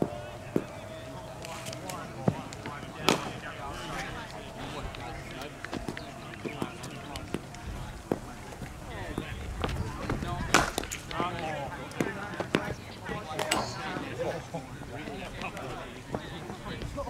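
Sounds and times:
background voices: 0.0 - 17.0.

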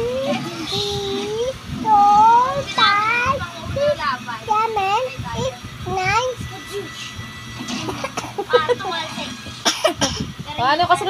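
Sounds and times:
toddler sing-song voice: 0.0 - 7.0.

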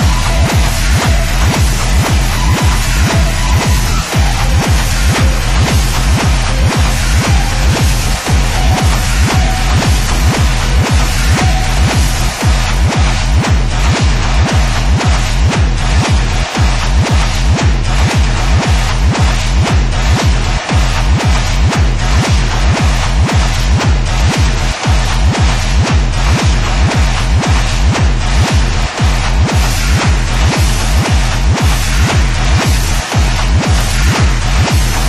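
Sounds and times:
electronic kick drum beat: 0.0 - 35.0
noisy synthesizer layers: 0.0 - 35.0.

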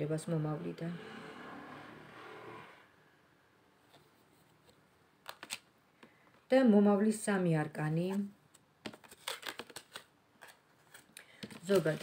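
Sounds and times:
cards being shuffled: 4.6 - 5.7, 8.5 - 12.0.

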